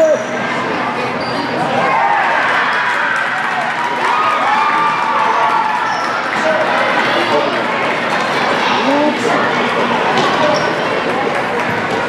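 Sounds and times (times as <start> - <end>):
echoing hall noise: 0.0 - 12.0.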